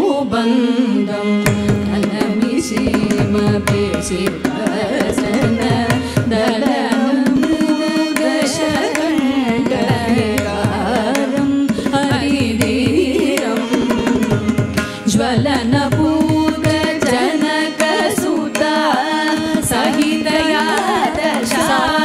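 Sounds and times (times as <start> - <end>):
violin: 0.0 - 22.0
women singing: 0.0 - 22.0.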